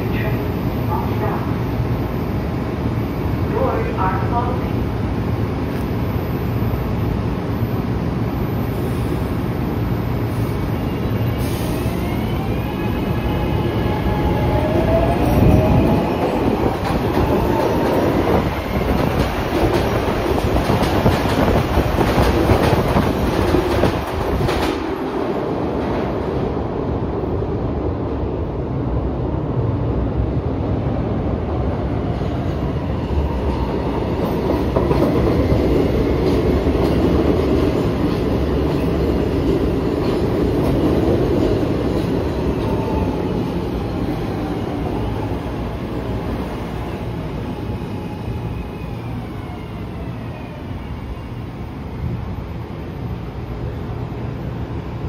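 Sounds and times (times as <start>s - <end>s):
heavy train rumble: 0.0s - 55.0s.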